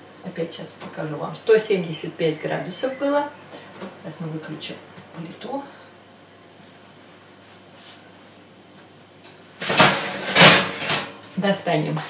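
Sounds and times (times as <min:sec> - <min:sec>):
baking tray scraping on oven rack: 0:09.6 - 0:11.2.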